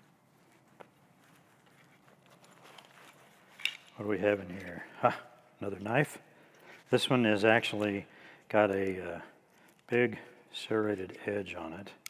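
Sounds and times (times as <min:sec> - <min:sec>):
fabric rustling: 0:00.0 - 0:04.8
backpack clicks: 0:02.1 - 0:04.7.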